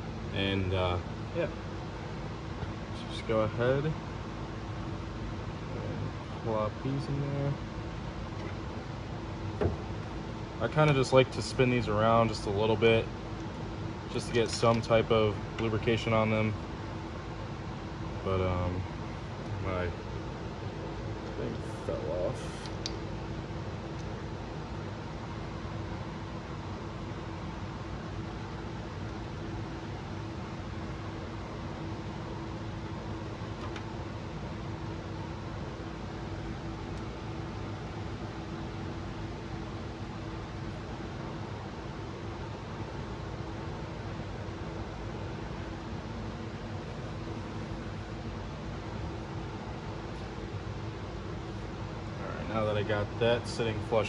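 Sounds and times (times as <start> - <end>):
fan whooshing: 0.0 - 54.0.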